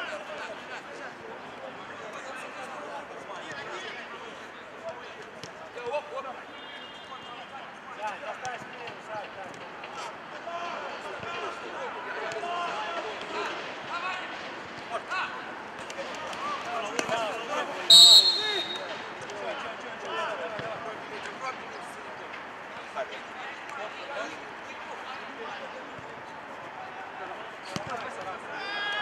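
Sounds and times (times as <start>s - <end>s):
referee whistle blast: 17.9s - 18.9s
players shouting: 17.9s - 19.0s.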